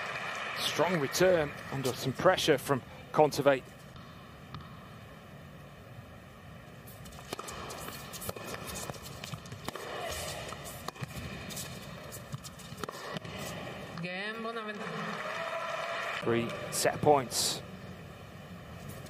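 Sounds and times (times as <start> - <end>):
racket striking ball: 7.2 - 14.0.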